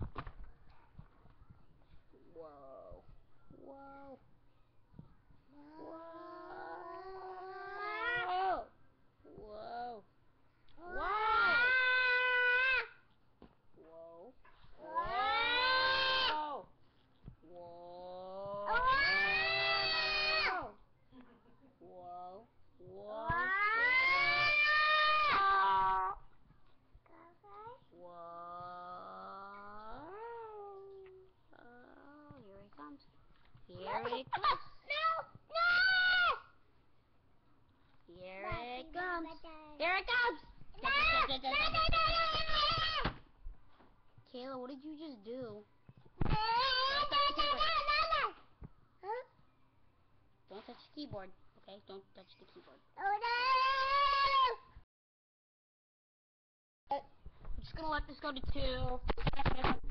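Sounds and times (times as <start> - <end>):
child squealing: 10.9 - 12.9, 14.8 - 16.5, 18.7 - 20.7, 23.3 - 26.1, 53.2 - 54.6.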